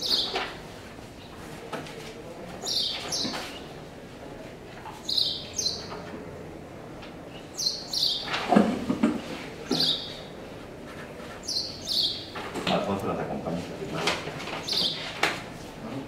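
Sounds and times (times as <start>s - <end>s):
bird chirping: 0.0s - 0.5s, 2.6s - 3.7s, 5.0s - 6.0s, 7.3s - 8.4s, 9.7s - 10.3s, 11.4s - 12.4s, 14.6s - 15.2s.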